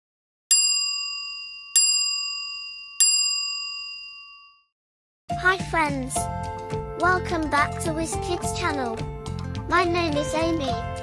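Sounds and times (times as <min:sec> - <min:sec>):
bright bell ding: 0:00.5 - 0:04.7.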